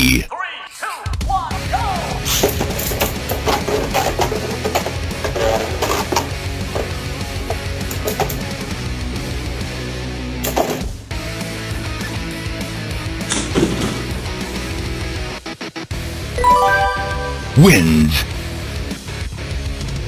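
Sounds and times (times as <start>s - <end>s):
rock background music: 4.2s - 15.4s.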